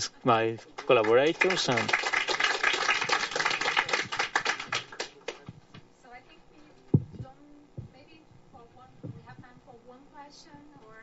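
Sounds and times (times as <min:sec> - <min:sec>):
audience applauding: 0:00.8 - 0:05.4.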